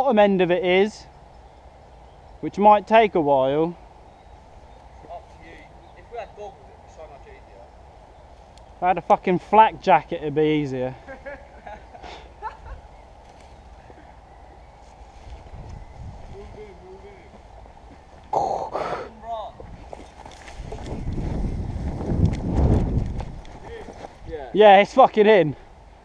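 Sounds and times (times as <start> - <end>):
outdoor noise: 0.0 - 26.0.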